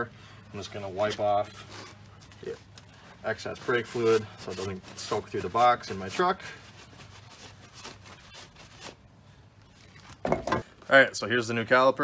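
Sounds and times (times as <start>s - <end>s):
rag wiping metal: 3.2s - 8.8s.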